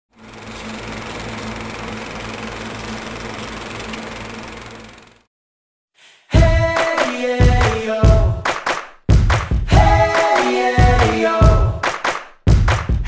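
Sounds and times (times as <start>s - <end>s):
machine running with low hum: 0.1s - 5.3s.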